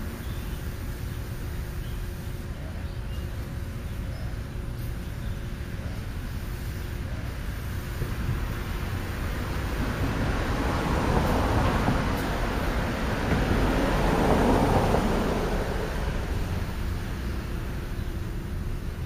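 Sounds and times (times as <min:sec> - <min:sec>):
vehicle passing by: 0:08.2 - 0:18.1.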